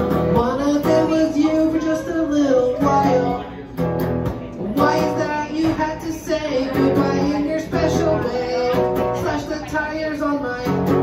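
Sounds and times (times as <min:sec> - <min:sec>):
man singing: 0:00.0 - 0:03.7, 0:04.5 - 0:11.0
strummed electric guitar: 0:00.0 - 0:11.0.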